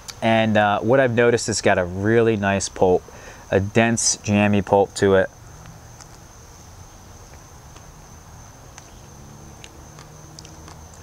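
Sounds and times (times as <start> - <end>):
high-pitched insect trill: 1.2 - 11.0.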